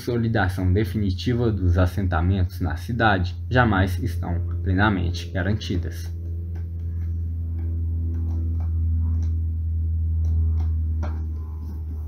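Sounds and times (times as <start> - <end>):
low droning music: 0.0 - 12.0.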